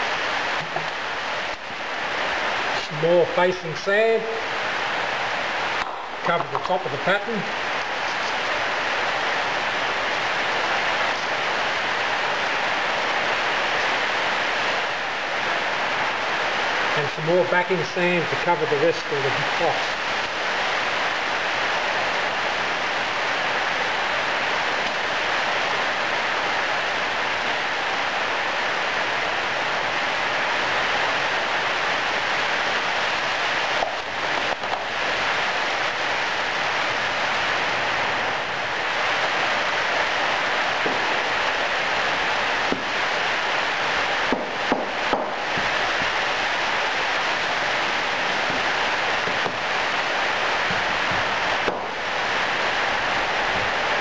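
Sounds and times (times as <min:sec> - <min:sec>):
heavy rain hissing: 0:00.0 - 0:54.0.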